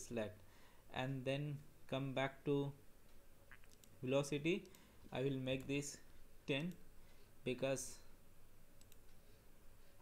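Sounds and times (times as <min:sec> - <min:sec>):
computer mouse clicks: 0:03.5 - 0:04.0, 0:04.6 - 0:04.9, 0:06.5 - 0:06.8, 0:08.8 - 0:09.2.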